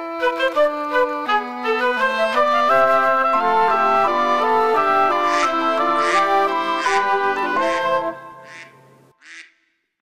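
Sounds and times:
background music: 0.0 - 9.2
duck quack: 5.2 - 9.6.

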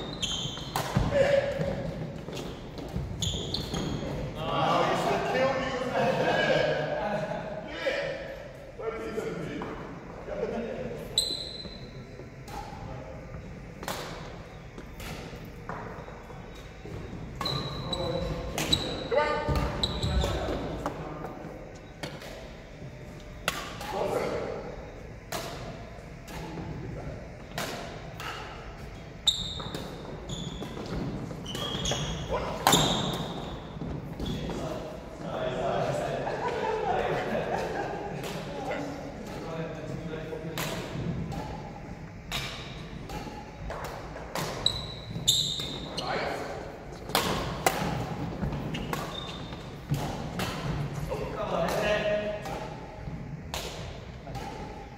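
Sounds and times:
rackets hitting shuttlecock: 0.6 - 3.9, 13.7 - 17.9, 23.4 - 24.3, 25.2 - 26.6, 27.4 - 29.0, 29.6 - 34.6, 40.4 - 54.9
shoes squeaking on wooden floor: 2.0 - 4.2, 15.7 - 20.6, 29.2 - 34.7, 44.6 - 46.3, 48.4 - 49.9.

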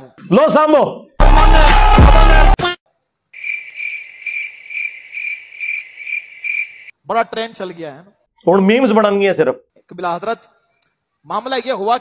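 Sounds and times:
cricket chirping: 3.3 - 7.0.

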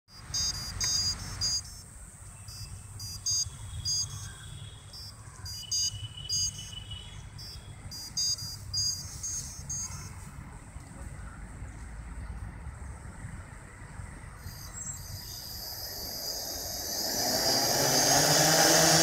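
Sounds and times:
short high electronic beeps: 0.1 - 4.3, 4.9 - 10.2, 14.4 - 18.1.

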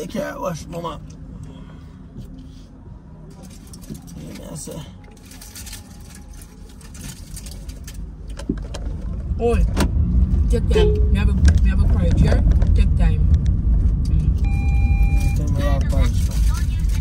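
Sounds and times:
car engine heard from inside: 0.0 - 17.0.

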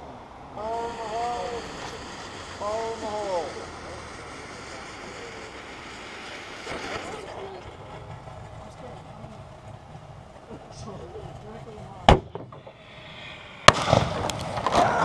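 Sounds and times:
faint voices: 0.0 - 12.2
firework fuse hissing: 0.0 - 15.0.

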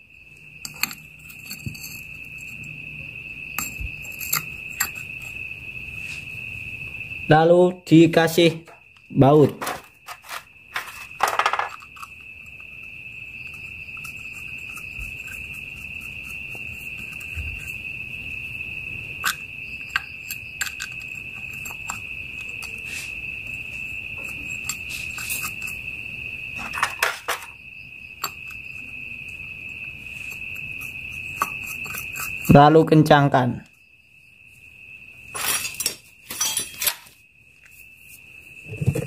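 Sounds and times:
insect trill: 0.0 - 39.0.

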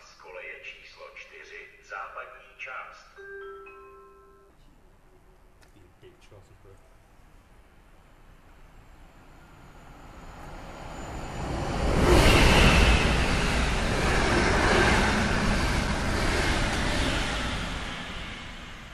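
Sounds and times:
passenger train passing at speed: 0.0 - 4.0, 6.4 - 18.9.

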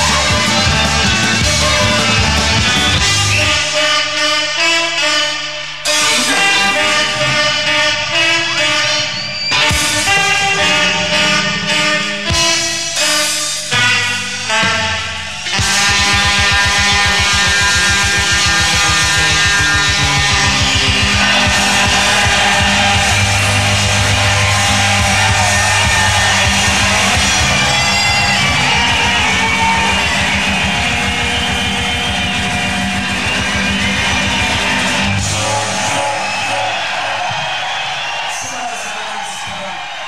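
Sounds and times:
punk band playing live: 0.0 - 3.8, 5.9 - 37.8.

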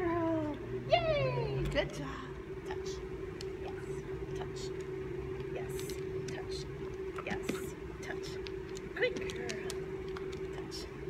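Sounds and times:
steady hum: 0.0 - 11.0
dog paws clicking on floor: 4.8 - 10.9.

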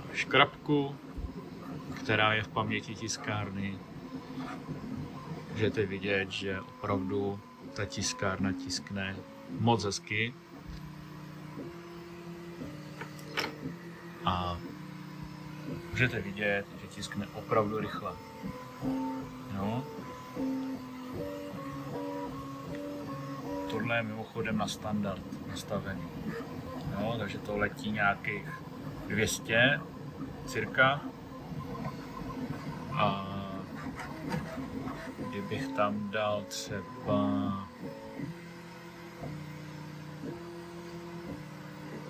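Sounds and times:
stepper motors singing tones: 0.2 - 41.9.

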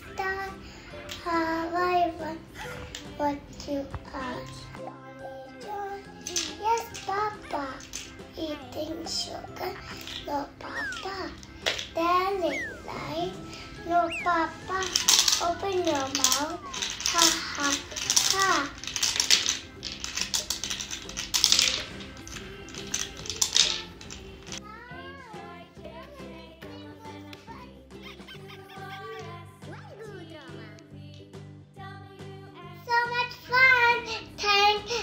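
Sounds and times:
candies rattling: 0.0 - 4.8, 5.6 - 24.6
background music: 0.0 - 35.0
candy dispenser clicking: 6.2 - 24.6
girl singing high notes: 12.0 - 17.7.

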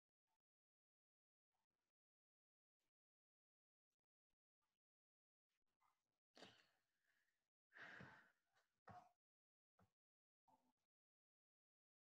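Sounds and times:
quiet breath sounds: 6.4 - 8.7.

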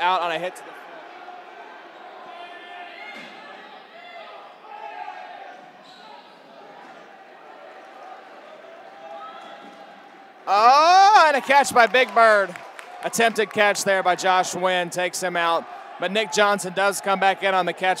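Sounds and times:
players calling out echoing: 8.6 - 18.0.

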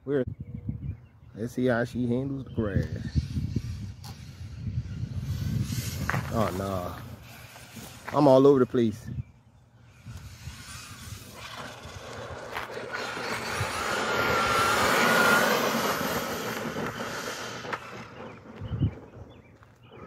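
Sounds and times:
tyres hissing on asphalt: 5.2 - 8.9, 9.8 - 18.6
electric motor whining: 9.8 - 19.3.

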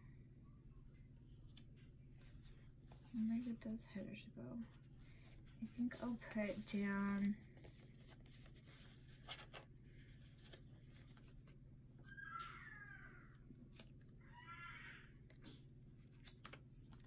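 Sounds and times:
paper and pen handling ticks: 5.6 - 12.2, 15.2 - 17.0
faint high-pitched calls: 12.0 - 13.4, 14.2 - 15.2.

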